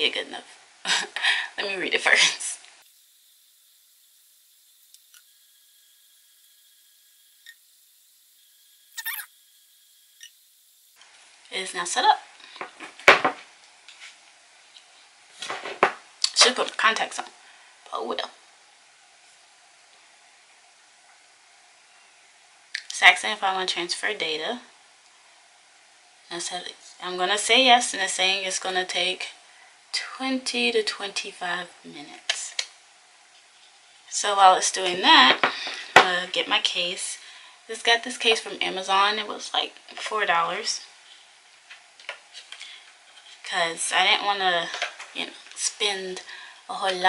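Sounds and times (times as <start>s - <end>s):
faint steady hiss: 0.0s - 47.0s.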